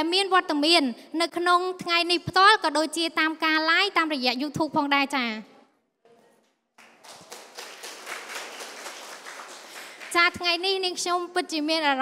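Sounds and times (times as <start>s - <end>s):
audience clapping: 6.7s - 10.4s.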